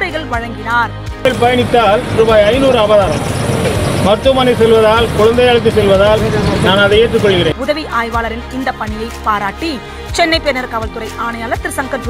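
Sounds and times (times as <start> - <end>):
street and vehicle noise: 0.0 - 7.6
man speaking: 1.3 - 3.4, 4.0 - 7.6.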